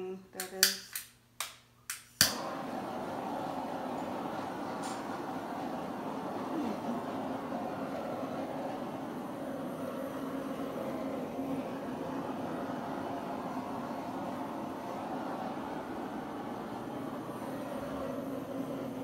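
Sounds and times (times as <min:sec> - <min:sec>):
butane torch hissing: 0:02.2 - 0:19.0.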